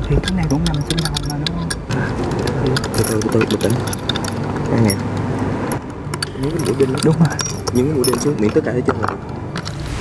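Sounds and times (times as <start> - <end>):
metal nails clinking: 0.0 - 9.8.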